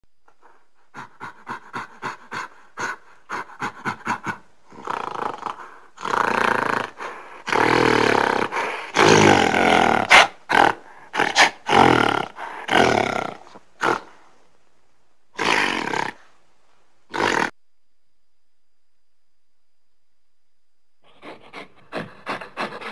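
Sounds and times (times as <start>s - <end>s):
short grunting calls: 1.0s - 14.4s, 15.3s - 16.4s, 17.1s - 17.6s
monster roars and growls: 4.7s - 14.1s.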